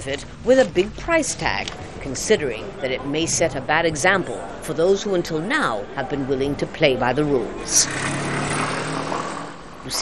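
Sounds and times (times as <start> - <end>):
passing vehicle engine hum: 7.5 - 10.0.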